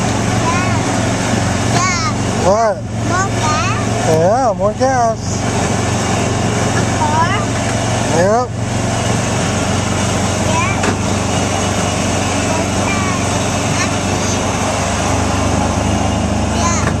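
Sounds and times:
small gasoline engine running: 0:00.0 - 0:17.0.

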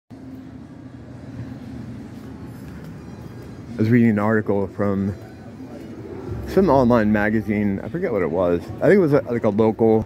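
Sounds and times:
faint hum: 0:00.1 - 0:09.4.

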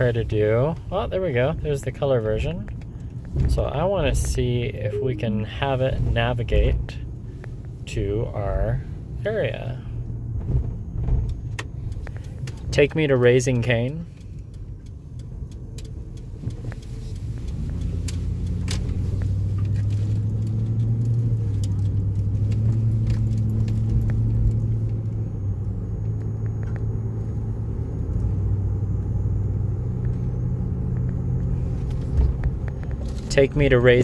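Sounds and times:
car engine and road noise: 0:00.0 - 0:34.0
faint clicks and rattles: 0:10.4 - 0:25.2.

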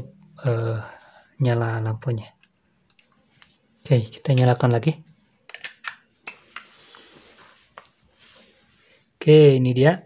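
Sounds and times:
soft rustle: 0:06.6 - 0:09.4.

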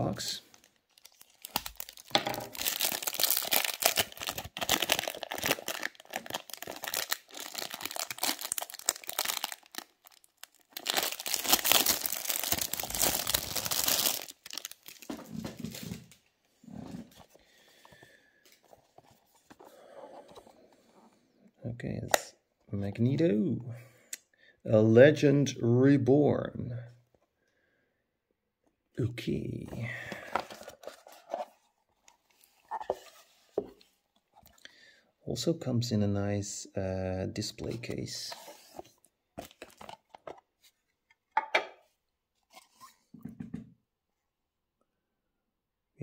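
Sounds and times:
plastic shrink wrap tearing: 0:00.9 - 0:15.1.

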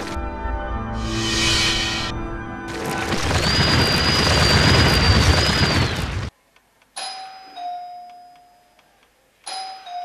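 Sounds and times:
two-note doorbell chime: 0:07.0 - 0:08.8, 0:09.5 - 0:10.0.

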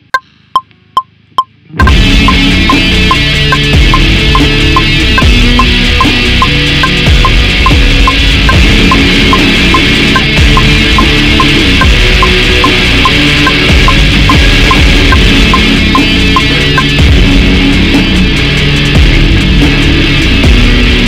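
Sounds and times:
metronome clicking: 0:00.1 - 0:04.9, 0:06.4 - 0:11.6
distorted electric guitar chords: 0:01.6 - 0:21.0.

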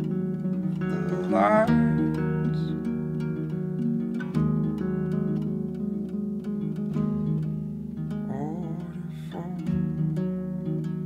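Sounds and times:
fingerpicked acoustic guitar: 0:00.0 - 0:11.0.

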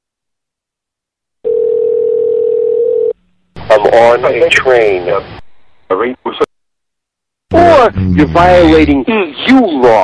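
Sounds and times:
telephone line tone: 0:01.4 - 0:03.2
person speaking on a call: 0:07.5 - 0:10.0.

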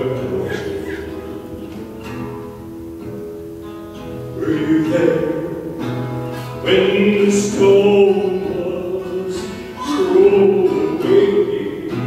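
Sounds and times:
man singing: 0:00.0 - 0:01.7, 0:04.3 - 0:05.9, 0:06.5 - 0:12.0
acoustic guitar chords: 0:00.0 - 0:12.0.

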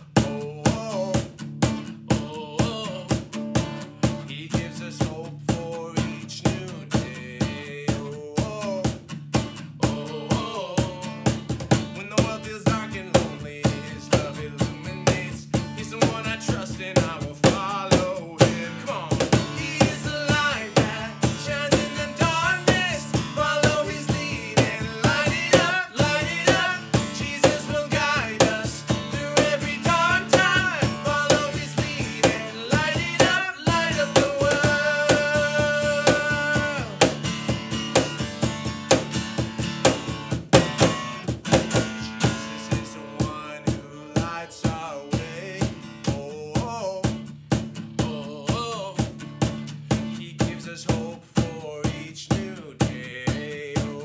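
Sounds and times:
men singing: 0:00.0 - 0:01.4, 0:02.1 - 0:03.3, 0:04.3 - 0:09.0, 0:09.7 - 0:37.3, 0:41.8 - 0:47.2, 0:47.9 - 0:49.2, 0:50.2 - 0:54.0
strummed acoustic guitar: 0:00.0 - 0:54.0.

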